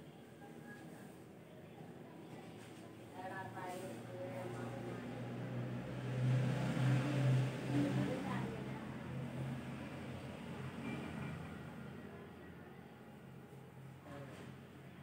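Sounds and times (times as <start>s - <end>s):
vehicle engine passing: 4.3s - 12.4s.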